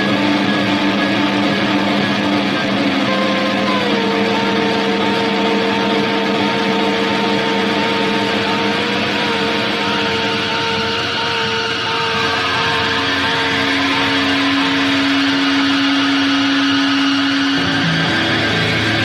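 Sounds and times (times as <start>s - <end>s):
distorted electric guitars: 0.0s - 19.0s.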